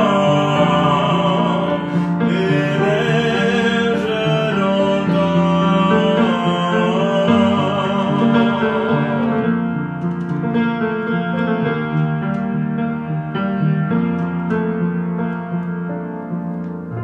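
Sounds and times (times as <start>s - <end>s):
upright piano playing chords: 0.0s - 17.0s.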